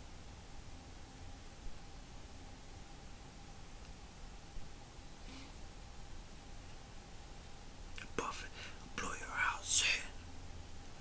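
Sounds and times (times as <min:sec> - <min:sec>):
man whispering: 0:08.0 - 0:10.2.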